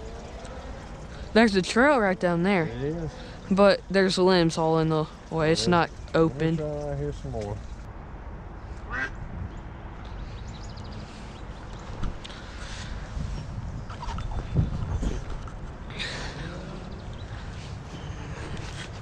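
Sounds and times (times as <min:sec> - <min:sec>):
ducks quacking: 0:08.9 - 0:09.2.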